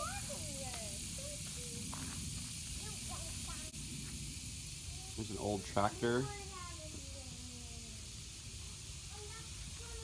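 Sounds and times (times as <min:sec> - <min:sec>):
steady high hiss: 0:00.0 - 0:10.0.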